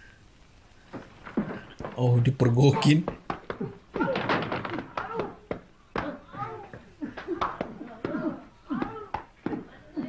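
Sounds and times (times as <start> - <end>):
film soundtrack voices: 1.6 - 10.0.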